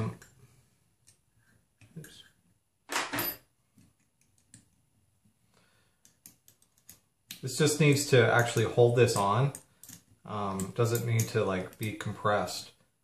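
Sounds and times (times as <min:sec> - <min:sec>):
metal hardware clicking and tapping: 0:06.0 - 0:07.4.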